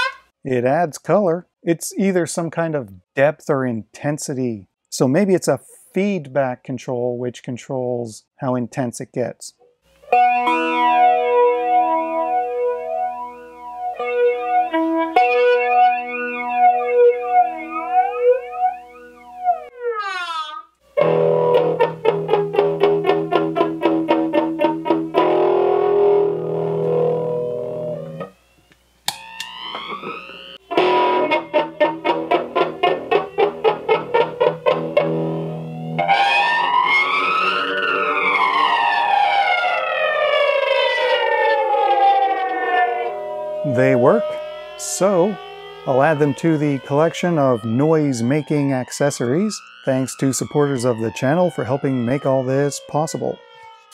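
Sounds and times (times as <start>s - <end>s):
electric guitar with flanger: 10.0s - 20.2s, 21.0s - 28.4s, 29.1s - 48.5s.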